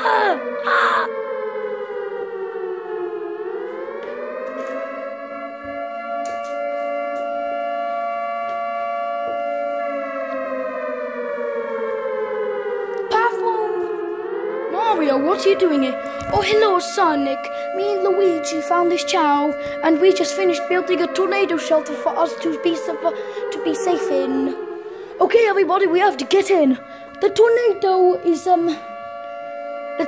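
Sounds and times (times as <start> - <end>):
warning siren wailing: 0.0 - 30.0.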